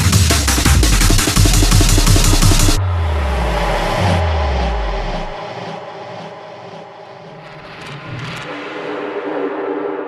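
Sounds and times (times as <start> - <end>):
deep sub-bass note: 0.6 - 5.4
dark atmospheric pad: 2.3 - 10.0.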